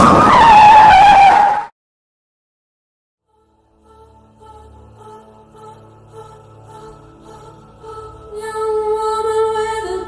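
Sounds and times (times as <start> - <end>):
car tyres screeching: 0.0 - 1.7.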